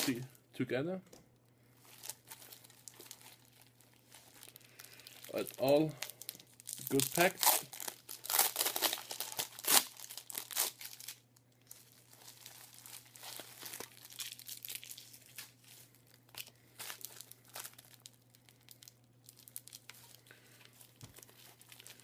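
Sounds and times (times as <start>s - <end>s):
packaging crinkling and tearing: 0.0s - 0.3s, 1.8s - 22.0s
faint low hum: 0.0s - 22.0s.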